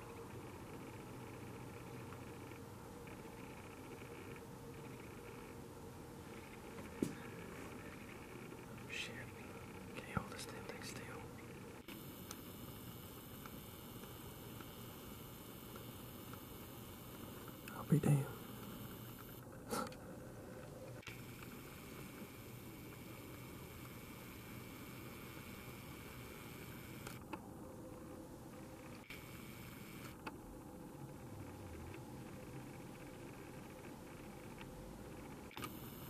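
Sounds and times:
camera microphone hiss: 0.0 - 36.0
hushed whispering: 8.8 - 11.5, 17.7 - 18.5
camera lens click: 26.7 - 27.2, 35.5 - 35.9.

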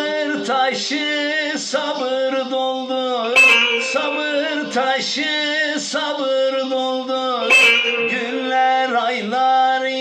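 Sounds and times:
man singing a long held note: 0.0 - 10.0.

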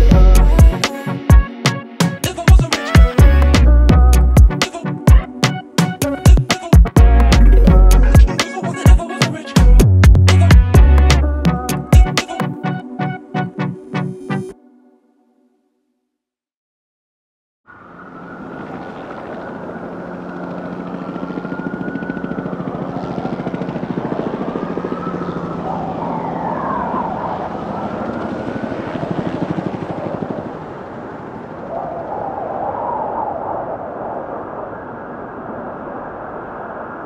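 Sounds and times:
distant sirens wailing: 17.7 - 37.0
traffic rumble: 17.7 - 37.0.

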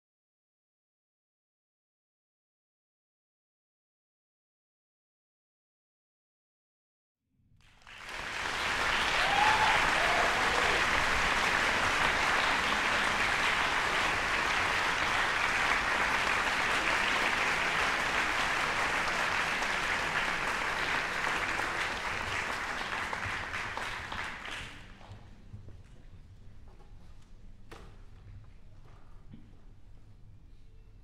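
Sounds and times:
audience applauding: 7.6 - 25.0.

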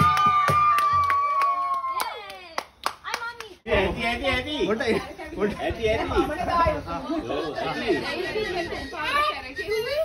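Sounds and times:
people clapping: 0.0 - 3.6
people chattering: 2.0 - 10.0.

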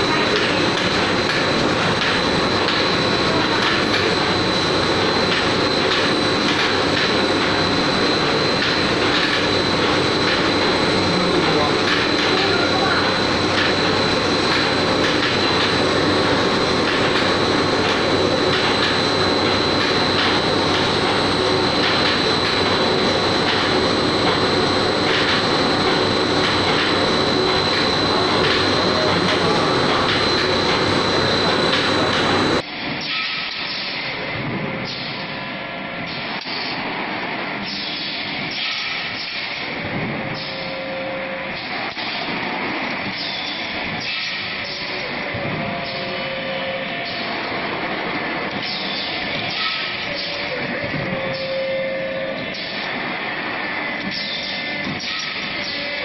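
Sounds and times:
dull machine hum: 0.0 - 32.7
loud machine noise with whine: 0.0 - 56.0.

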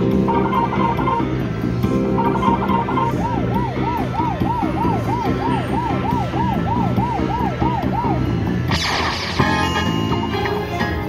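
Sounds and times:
slot machine game music: 0.0 - 11.0
siren-like warbling tone: 0.2 - 1.3, 2.2 - 9.8
burst of slot machine sound: 8.7 - 10.2.

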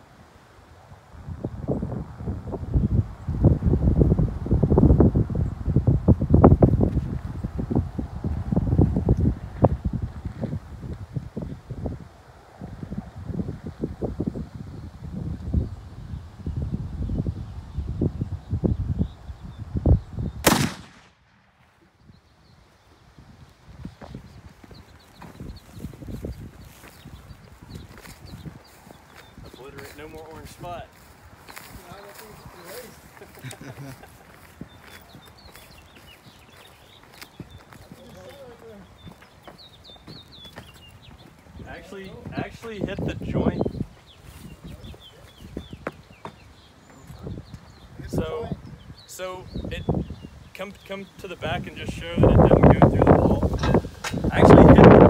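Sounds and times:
wind rumble on microphone: 0.0 - 55.0
rifle shot: 20.4 - 21.7.

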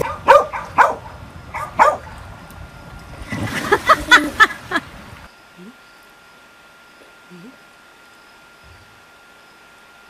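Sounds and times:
dog barking: 0.0 - 2.1.

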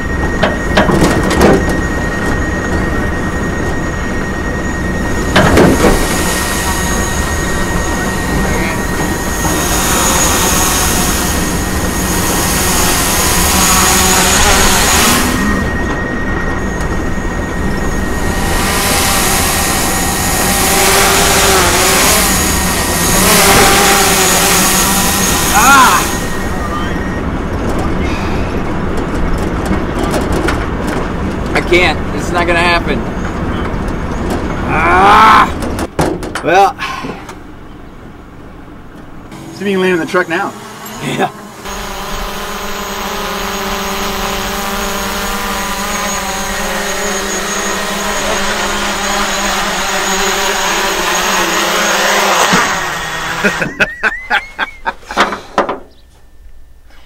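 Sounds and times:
road noise and wind rush: 0.0 - 53.2
thin high-pitched tone: 25.5 - 27.3.

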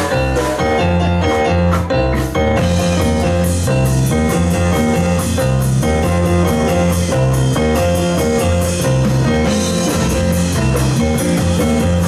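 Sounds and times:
drum kit: 0.0 - 12.0
electric bass: 0.0 - 12.0
electric guitar: 0.0 - 12.0
keyboard: 0.0 - 12.0.

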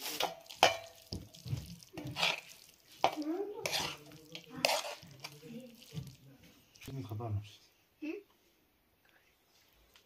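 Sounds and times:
metal spoon scraping metal pan: 0.0 - 5.9.

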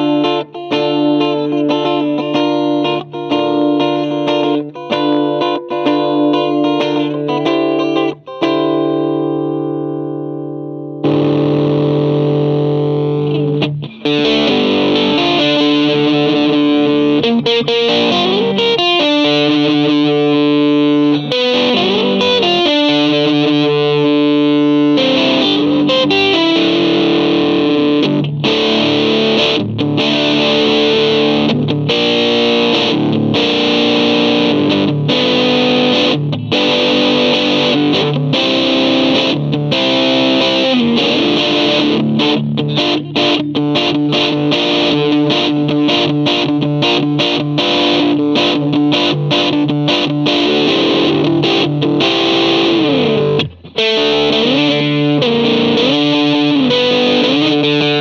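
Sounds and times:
distorted electric guitar: 0.0 - 58.0.

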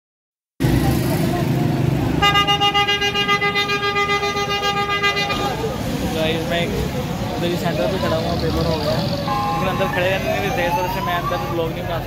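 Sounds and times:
street noise: 0.6 - 12.0.

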